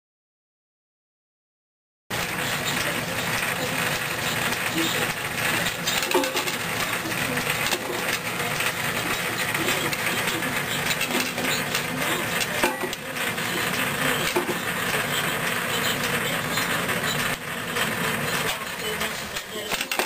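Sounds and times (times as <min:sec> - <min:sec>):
machinery motor running: 0:02.1 - 0:20.0.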